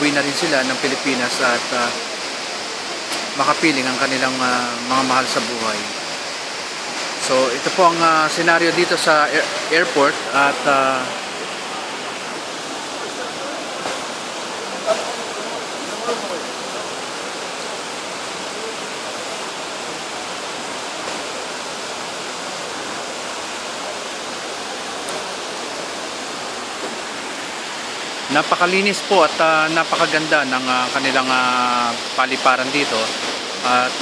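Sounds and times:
fountain water rushing: 0.0s - 34.0s.

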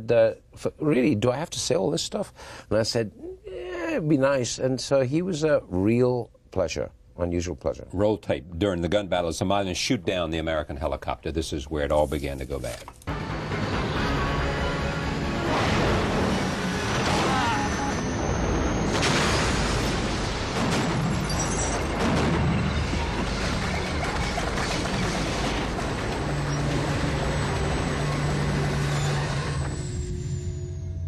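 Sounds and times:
dramatic music: 13.1s - 21.0s
booms and crash impacts: 15.4s - 29.0s.

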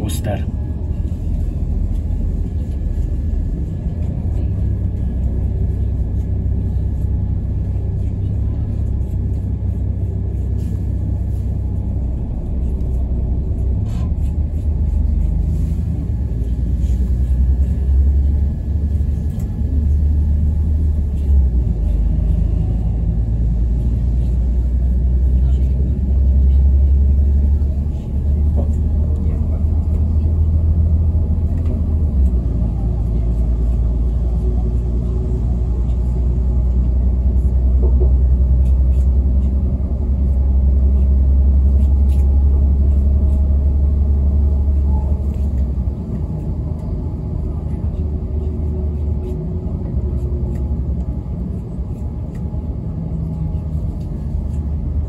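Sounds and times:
train rumble inside carriage: 0.0s - 55.0s.

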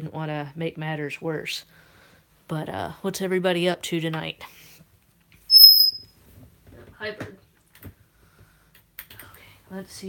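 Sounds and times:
bird high-pitched whistle: 5.5s - 6.1s.

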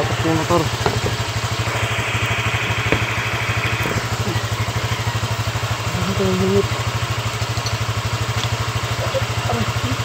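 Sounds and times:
scooter engine idling: 0.0s - 10.0s.

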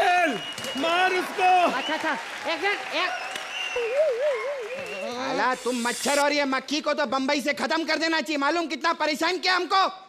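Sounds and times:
audience applauding: 0.0s - 5.6s.

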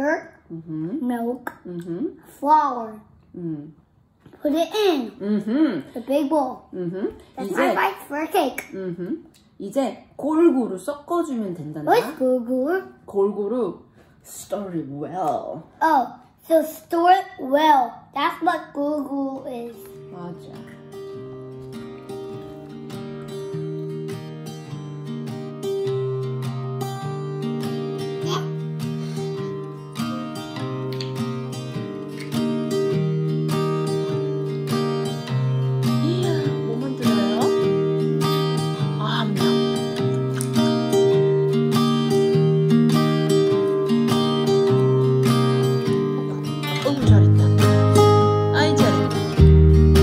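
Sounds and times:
plucked acoustic guitar music: 4.0s - 9.6s, 14.8s - 50.0s.

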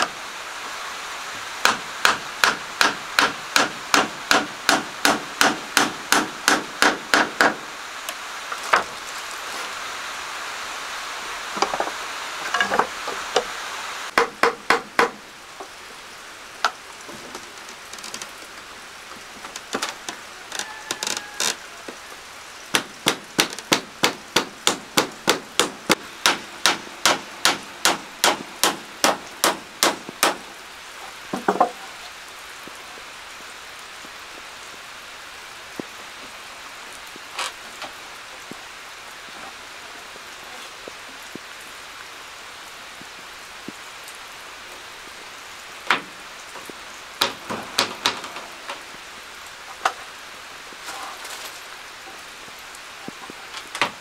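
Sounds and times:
hammer driving nails into wood: 1.6s - 7.6s, 14.1s - 15.2s, 22.7s - 30.4s, 47.2s - 48.3s.

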